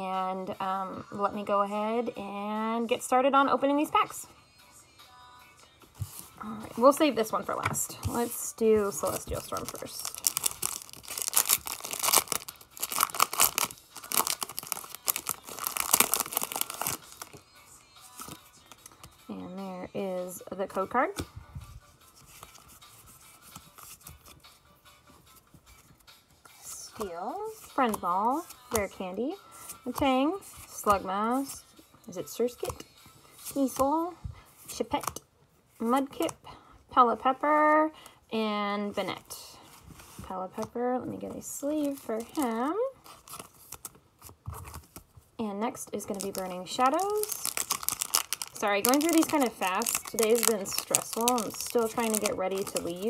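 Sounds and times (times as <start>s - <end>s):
plastic sleeve crinkling: 8.1s - 17.4s, 46.0s - 53.0s
cards sliding and rubbing: 18.0s - 19.2s, 22.0s - 24.4s.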